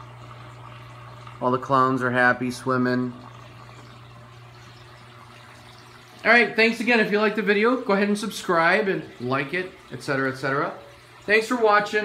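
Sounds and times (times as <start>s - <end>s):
constant low hum: 0.0s - 6.5s
water trickling and rushing: 0.0s - 12.0s.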